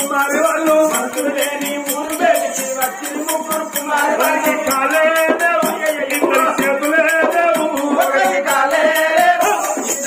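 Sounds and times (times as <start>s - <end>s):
jingling percussion: 0.0s - 10.0s
person singing folk melody: 0.0s - 10.0s
small hand drum beat: 0.0s - 10.0s.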